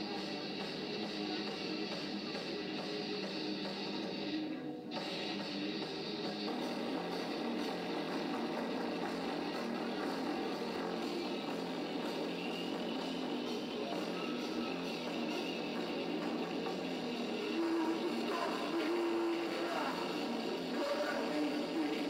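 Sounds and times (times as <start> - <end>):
drum kit: 0.0 - 22.0
electric guitars: 0.0 - 22.0.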